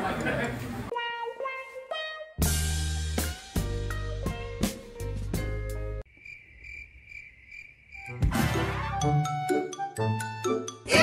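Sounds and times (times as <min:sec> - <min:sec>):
upbeat background music: 0:02.4 - 0:06.0, 0:08.1 - 0:11.0
crickets chirping: 0:06.0 - 0:08.2.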